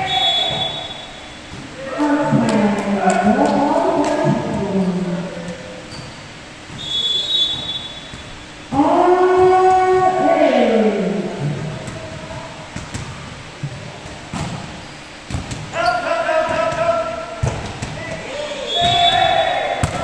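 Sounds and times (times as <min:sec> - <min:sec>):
referee's whistle: 0:00.0 - 0:01.4, 0:06.8 - 0:08.2, 0:18.4 - 0:19.8
person speaking: 0:01.8 - 0:05.8.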